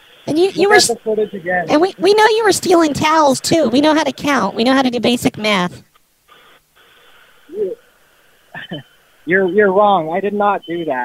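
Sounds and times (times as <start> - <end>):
telephone line hiss: 0.0 - 11.0.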